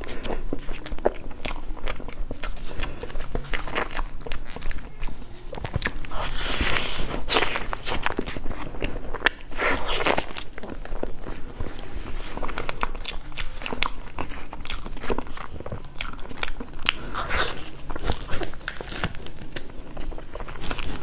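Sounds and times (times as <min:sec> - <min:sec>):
close-miked chewing: 0:00.0 - 0:21.0.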